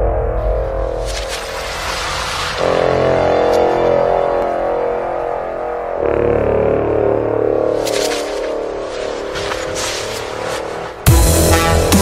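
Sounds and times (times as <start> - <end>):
low droning synth: 0.0 - 12.0
hissing noise whoosh: 0.8 - 3.8.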